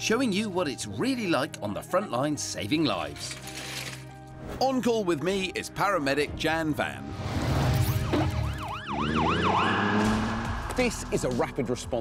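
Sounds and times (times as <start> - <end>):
siren yelping: 7.8 - 10.1.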